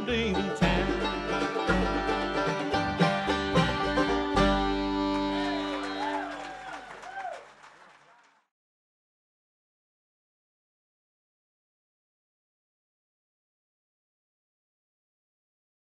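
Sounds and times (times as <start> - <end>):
bluegrass band playing: 0.0 - 6.4.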